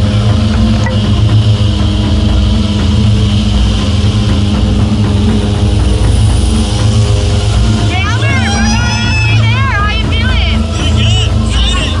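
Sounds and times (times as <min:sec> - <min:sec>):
propeller aircraft engines droning: 0:00.0 - 0:12.0.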